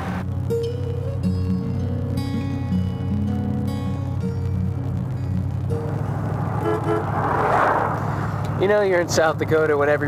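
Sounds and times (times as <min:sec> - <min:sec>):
car engine humming: 0:00.0 - 0:10.0
vehicle passing by: 0:05.6 - 0:09.4
car horn toots: 0:06.4 - 0:07.3.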